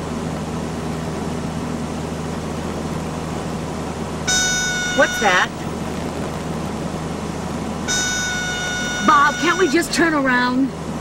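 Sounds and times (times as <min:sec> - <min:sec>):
light aircraft engine drone: 0:00.0 - 0:11.0
high-pitched cockpit warning horn: 0:04.3 - 0:05.6, 0:07.9 - 0:10.2.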